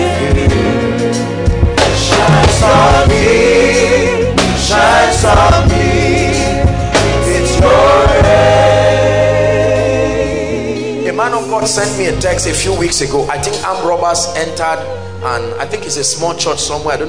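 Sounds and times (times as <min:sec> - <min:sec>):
bass and keyboard accompaniment: 0:00.0 - 0:17.0
choir singing gospel: 0:00.0 - 0:17.0.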